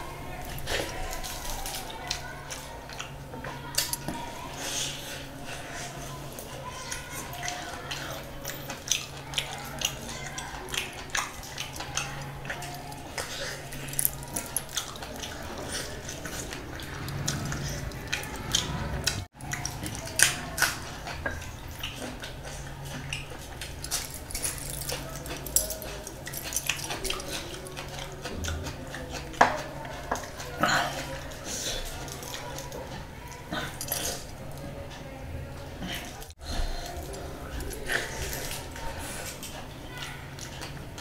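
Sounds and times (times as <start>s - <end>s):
wet chewing and lip smacks: 6.3s - 34.4s.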